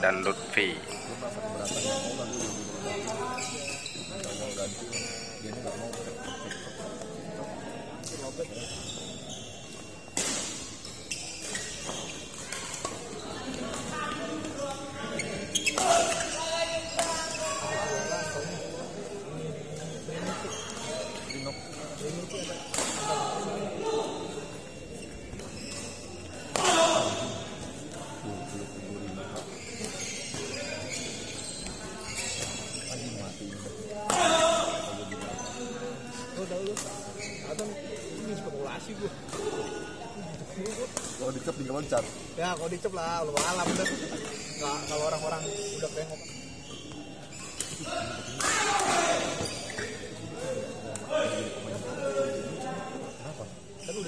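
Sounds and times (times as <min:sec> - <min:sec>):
crowd chatter in echoing hall: 0:00.0 - 0:54.0
loud shouts: 0:26.6 - 0:27.3, 0:48.0 - 0:49.4.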